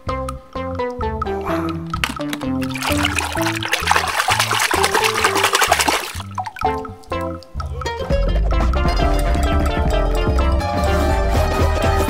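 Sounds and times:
background music with bass line: 0:00.0 - 0:12.0
hand splashing in water: 0:02.6 - 0:06.8.

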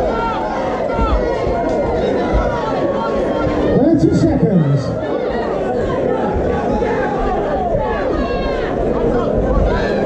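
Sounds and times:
spectators shouting and chattering: 0:00.0 - 0:10.0.

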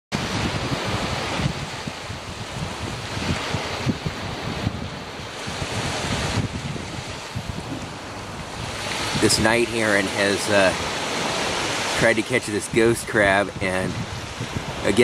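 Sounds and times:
wind buffeting microphone: 0:00.1 - 0:15.0
surf washing onto beach: 0:00.2 - 0:15.0.

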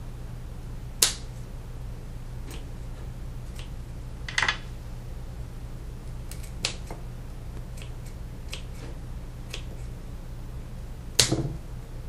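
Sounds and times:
steady low hum: 0:00.0 - 0:12.0
scissors snipping stems: 0:03.5 - 0:03.7, 0:06.3 - 0:07.0, 0:07.6 - 0:09.9.

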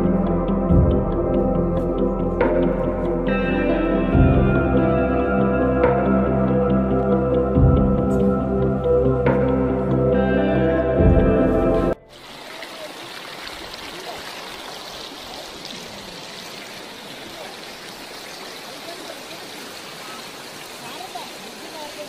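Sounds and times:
river water rushing over rocks: 0:12.1 - 0:22.0.

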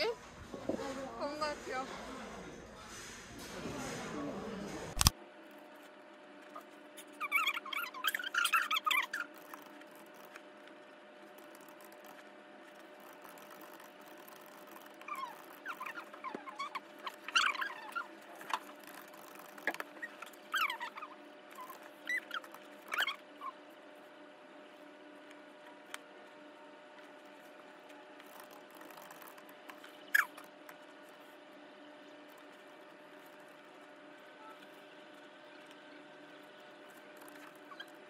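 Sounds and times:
high squeaky chirps: 0:07.1 - 0:09.6, 0:14.5 - 0:18.1, 0:18.9 - 0:23.6, 0:30.0 - 0:30.4, 0:37.2 - 0:38.0.

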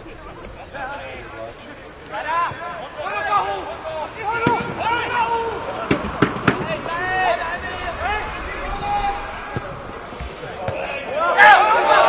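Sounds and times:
voices shouting outdoors: 0:00.0 - 0:12.0.

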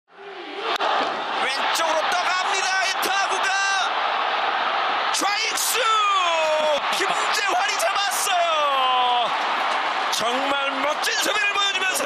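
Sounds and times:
stadium crowd noise: 0:00.1 - 0:12.0
commentator talking: 0:05.1 - 0:09.3, 0:10.1 - 0:12.0.

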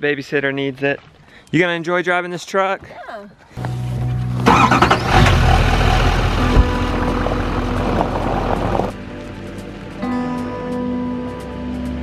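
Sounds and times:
background music: 0:03.6 - 0:12.0
truck engine starting and running: 0:03.7 - 0:09.3.

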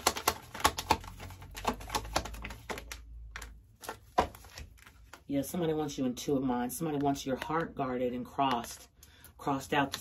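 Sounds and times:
cards being shuffled: 0:00.0 - 0:05.3.

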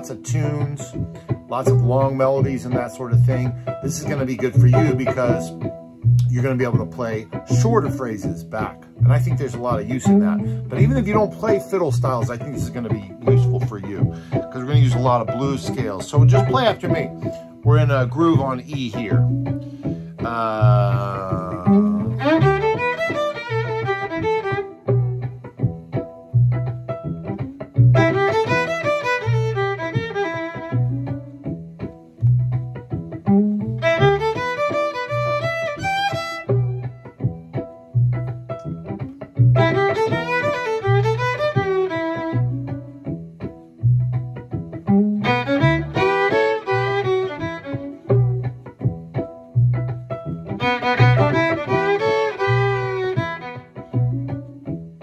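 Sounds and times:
solo fiddle playing bluesy phrases: 0:00.0 - 0:54.7
backing groove with low pulse: 0:00.0 - 0:55.0.

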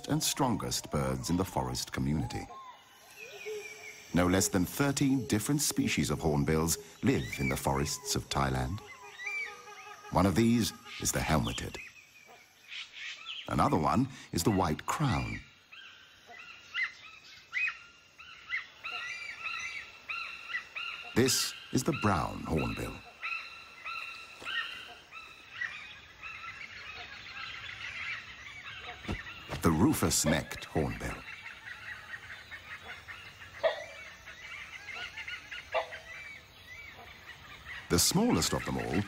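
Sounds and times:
birds chirping: 0:00.0 - 0:39.0
hornbill calls: 0:00.0 - 0:39.0.

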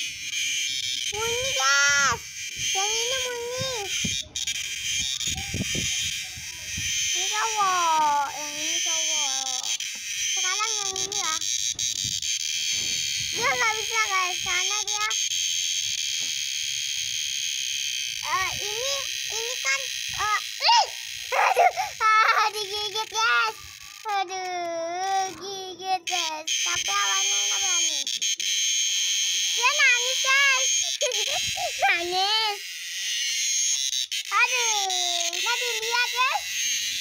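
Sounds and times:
cicada buzzing: 0:00.0 - 0:37.0
girl crying out: 0:20.6 - 0:22.5.

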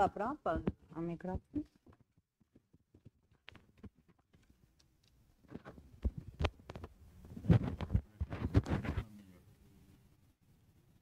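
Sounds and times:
microphone handling noise: 0:05.5 - 0:09.1.

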